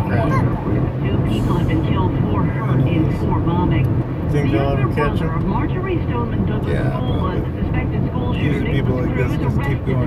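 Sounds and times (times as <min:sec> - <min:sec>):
person talking: 0:00.0 - 0:00.6
car engine and tyres rumbling: 0:00.0 - 0:10.0.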